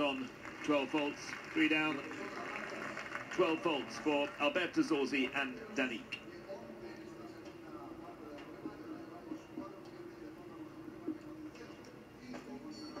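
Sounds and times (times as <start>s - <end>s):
indistinct voices from television: 0.0s - 13.0s.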